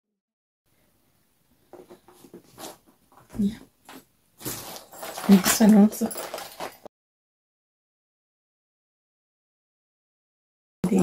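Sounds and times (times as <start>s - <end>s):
paper rustling and crinkling: 4.4s - 6.9s.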